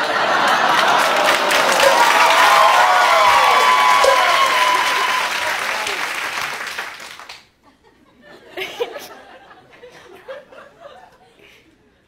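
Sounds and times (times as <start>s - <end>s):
voices cheering: 0.0s - 7.0s
audience applauding: 0.0s - 7.5s.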